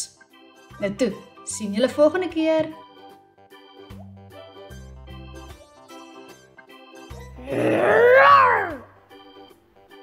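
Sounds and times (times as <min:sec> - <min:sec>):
cartoon dinosaur roar: 0:07.4 - 0:08.9.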